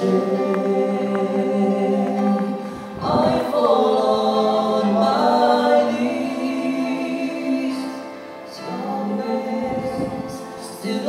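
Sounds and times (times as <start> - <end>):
two men singing a duet: 0.0 - 11.0.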